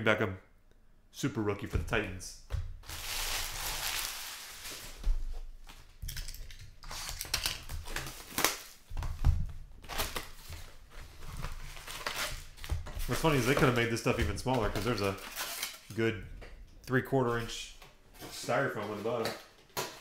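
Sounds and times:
foil wrappers crinkling: 2.8 - 9.1.

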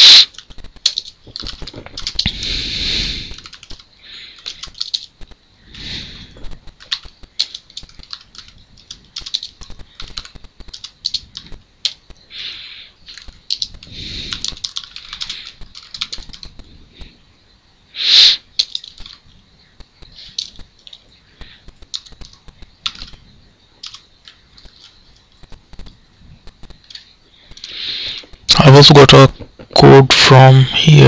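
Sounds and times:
computer keyboard typing: 0.2 - 2.3, 3.3 - 5.4, 6.4 - 12.2, 13.1 - 16.7, 18.6 - 27.8.

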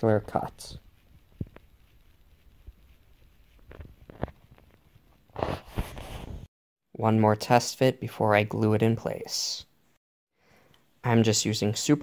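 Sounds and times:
plastic model rustling: 0.8 - 6.5.

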